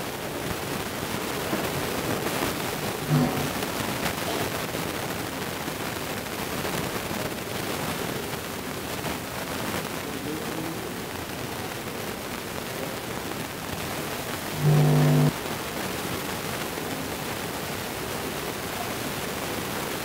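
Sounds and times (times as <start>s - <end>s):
steady background noise: 0.0s - 20.0s
short flat buzzing tone: 3.0s - 3.6s, 14.5s - 15.4s.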